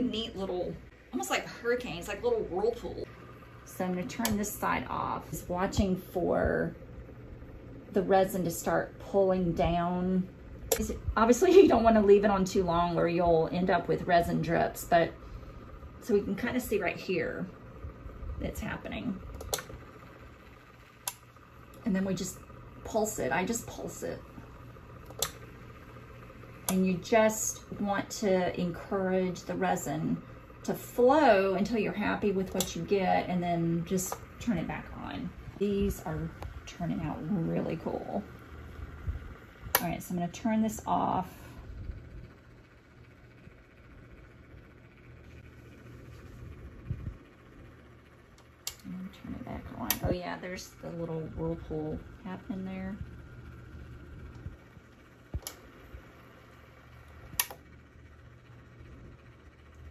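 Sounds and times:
faint low hum: 0.0 - 59.9
sharp click: 10.7 - 11.0, 19.4 - 19.7, 25.0 - 25.4, 48.6 - 48.9, 57.3 - 57.6.

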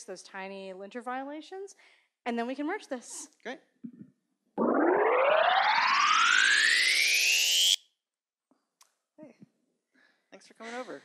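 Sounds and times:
synthesized rising sweep: 4.6 - 7.8.

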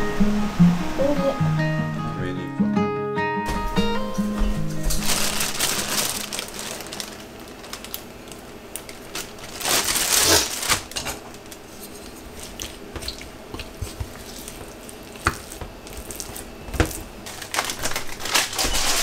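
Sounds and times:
plastic bag rustling: 3.5 - 19.0.

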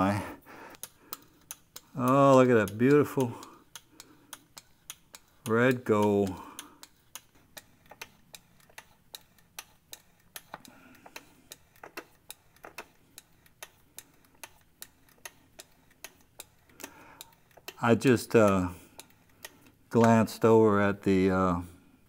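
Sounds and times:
hand pump clicking: 0.7 - 21.0.

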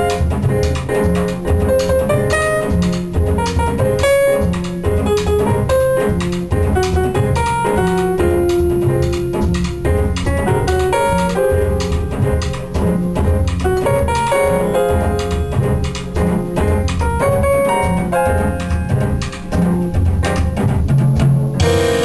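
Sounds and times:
drums keeping time: 0.0 - 22.0
jazz piano: 0.0 - 22.0
walking double bass: 0.0 - 22.0.

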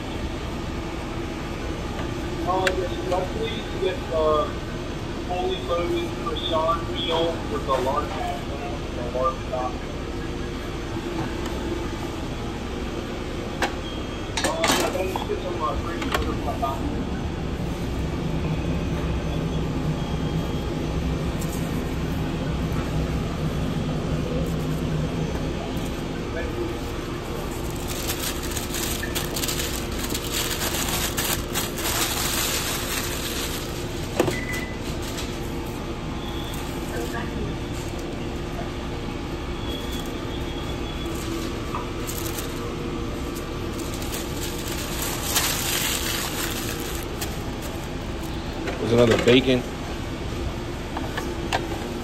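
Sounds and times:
kitchen equipment and ventilation hum: 0.0 - 52.0
paper wrappers crinkling: 26.7 - 34.2, 41.0 - 42.7, 43.3 - 48.5.

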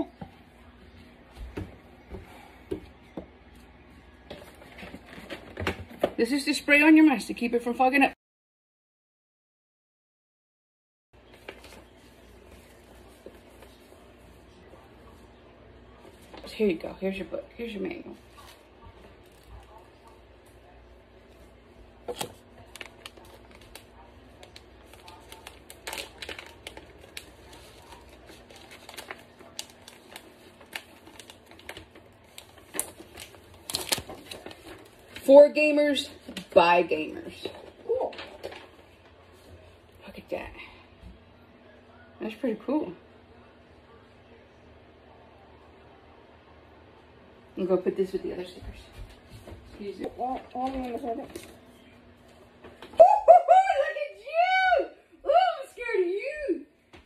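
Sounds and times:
booklet pages rustling: 11.2 - 15.2, 21.2 - 39.7, 49.1 - 52.9
paper crinkle: 11.2 - 15.3, 18.1 - 39.8, 49.2 - 53.0.

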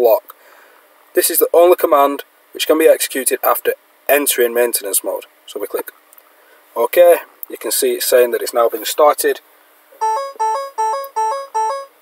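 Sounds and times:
two-note electronic warning chime: 10.0 - 12.0.

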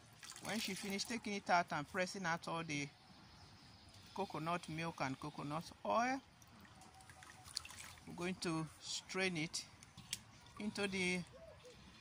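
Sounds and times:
liquid sloshing and dripping: 0.0 - 1.1, 6.3 - 8.1
soft splashes: 0.0 - 1.2, 6.3 - 8.2.

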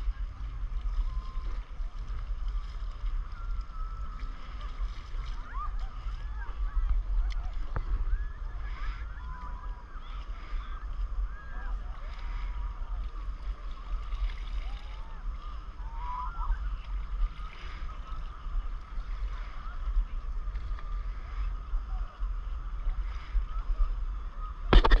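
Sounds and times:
sea water lapping: 0.0 - 25.0
wind rumble on microphone: 0.0 - 25.0
faint distant calls: 2.6 - 24.7.

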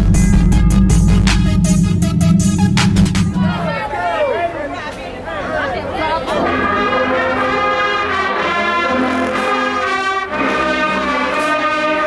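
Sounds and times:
crowd chatter: 3.2 - 11.4
people calling out: 3.3 - 7.5.

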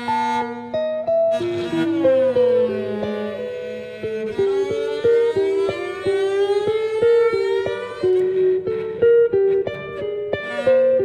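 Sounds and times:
short cello notes: 0.0 - 9.0.

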